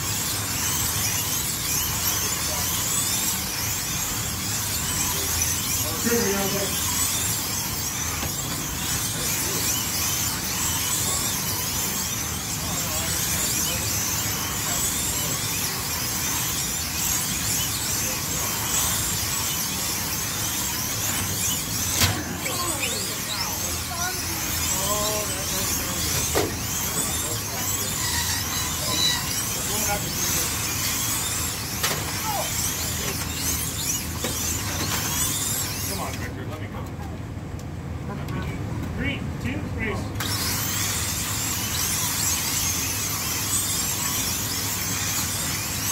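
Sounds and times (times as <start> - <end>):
slot car motors whining: 0.0 - 38.5, 39.1 - 45.9.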